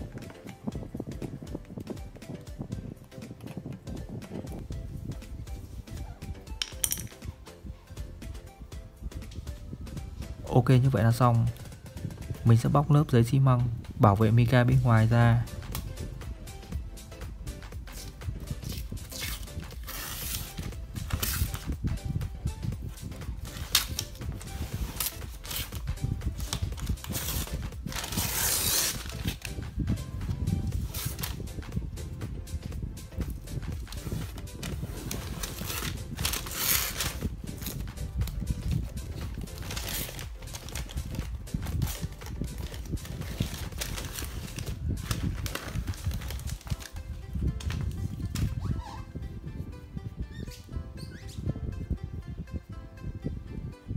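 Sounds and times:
background music: 0.0s - 53.9s.

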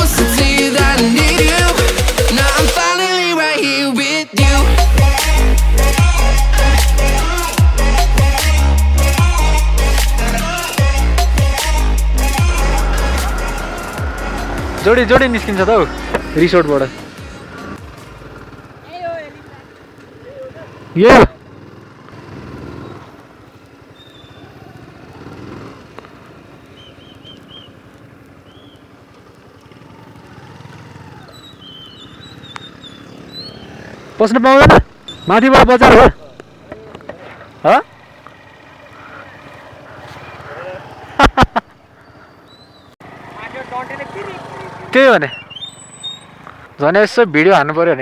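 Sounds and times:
motorcycle engine running: 4.4s - 46.8s
road and wind noise: 4.7s - 48.0s.

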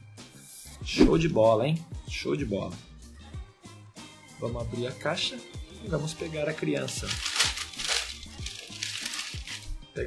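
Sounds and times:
background music with steady beat: 0.0s - 10.0s
tissue paper crinkling: 6.8s - 9.8s.

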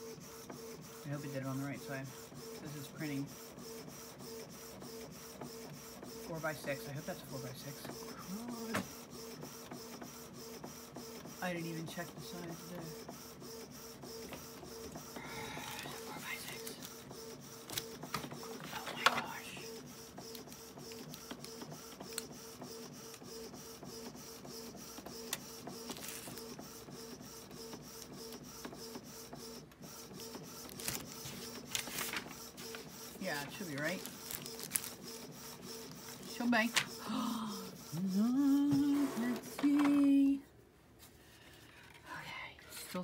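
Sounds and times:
inkjet printer printing: 0.0s - 40.4s.

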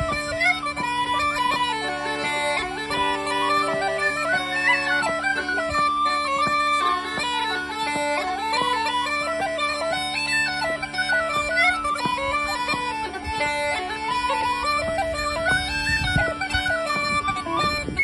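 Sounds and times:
uilleann pipes and tin whistle jig: 0.0s - 18.0s.

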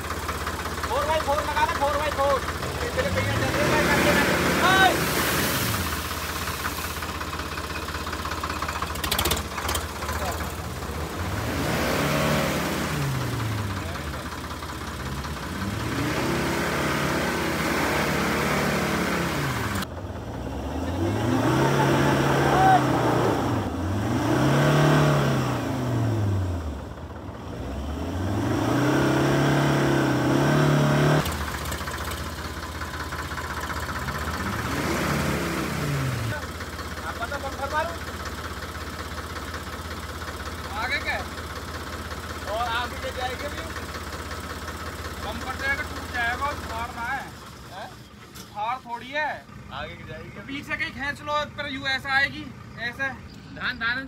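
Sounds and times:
diesel engine revving: 0.0s - 54.0s.

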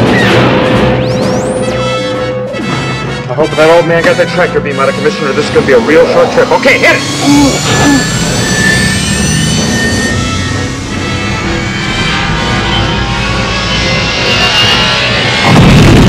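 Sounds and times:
orchestral film music: 0.0s - 8.4s
spaceship engine whine and roar: 3.3s - 16.0s
deep rumble: 5.2s - 16.0s.

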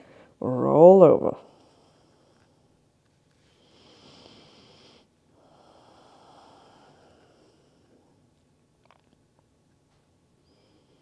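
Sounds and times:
breathing through the nose: 3.4s - 8.0s.

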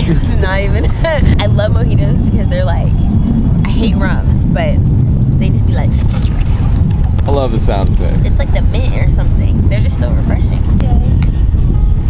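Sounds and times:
woman speaking: 0.0s - 2.9s, 3.6s - 4.8s, 5.4s - 6.6s, 8.1s - 11.2s
wind buffeting microphone: 0.0s - 12.0s.

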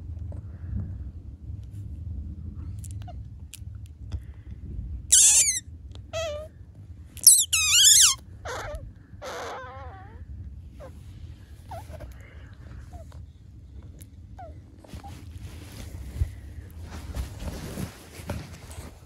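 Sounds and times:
otter pup squeaking: 5.1s - 5.6s, 7.2s - 10.2s.

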